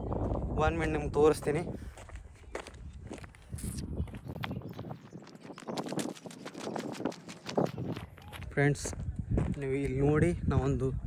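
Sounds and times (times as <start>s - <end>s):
footsteps tapping and scuffing: 1.4s - 10.1s.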